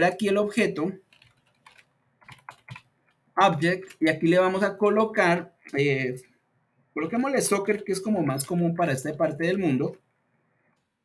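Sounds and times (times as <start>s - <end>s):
faint keyboard typing: 0.8s - 4.5s.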